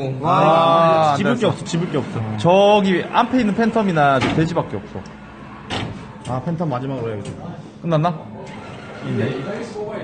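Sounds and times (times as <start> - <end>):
men talking quietly: 6.2 - 10.0.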